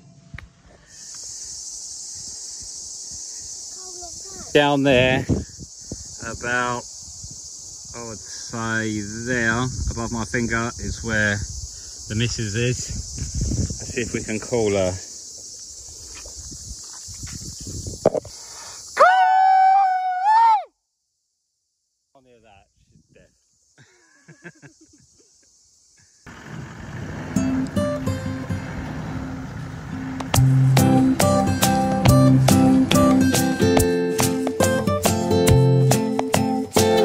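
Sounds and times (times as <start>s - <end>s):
insects buzzing: 0.0s - 20.2s, 20.8s - 37.0s
crickets chirping: 0.0s - 37.0s.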